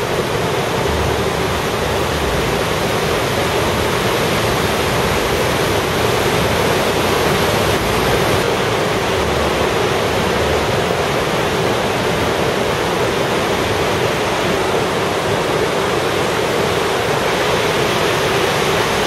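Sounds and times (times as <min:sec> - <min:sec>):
whitewater rapids rushing: 0:00.0 - 0:19.0.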